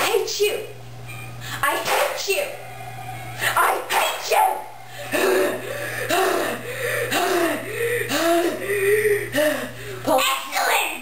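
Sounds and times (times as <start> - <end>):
boy making wordless sounds: 5.1 - 11.0.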